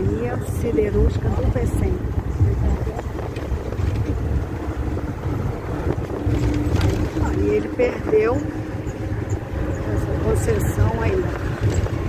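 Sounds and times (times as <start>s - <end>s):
bus engine and road noise: 0.0s - 12.0s
wind noise on microphone: 0.0s - 12.0s.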